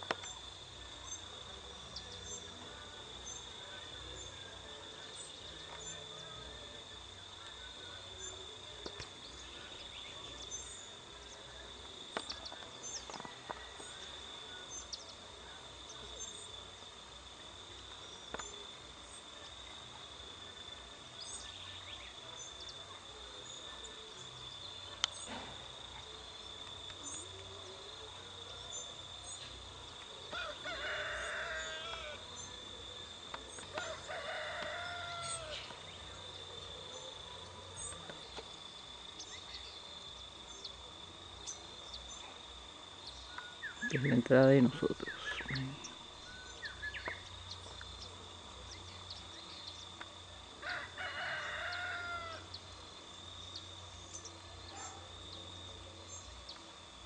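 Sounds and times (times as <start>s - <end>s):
rooster crowing: 30.3s - 32.2s, 33.7s - 35.7s, 50.6s - 52.5s.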